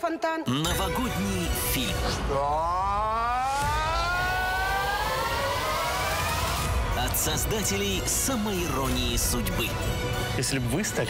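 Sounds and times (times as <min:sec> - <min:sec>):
rising tone riser effect: 0:01.4 - 0:07.6.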